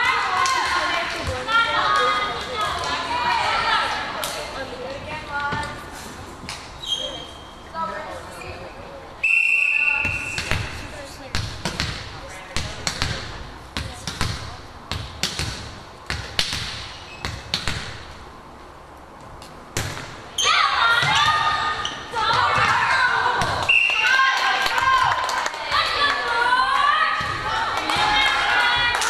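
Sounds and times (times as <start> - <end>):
referee's whistle blast: 9.2 - 10.6
loud shouting voices: 20.4 - 29.0.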